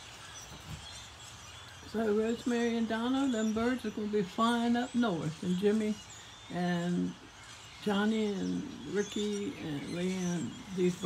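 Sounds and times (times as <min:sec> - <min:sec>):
distant birds chirping: 0:00.0 - 0:11.0.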